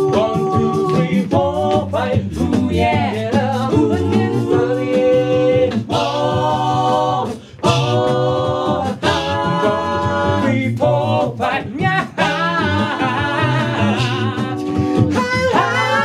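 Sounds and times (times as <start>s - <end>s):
male a cappella group singing: 0.0s - 16.0s.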